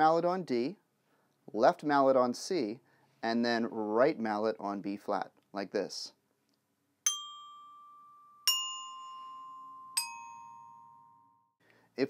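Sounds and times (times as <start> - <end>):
glockenspiel notes ringing: 7.1 - 11.6.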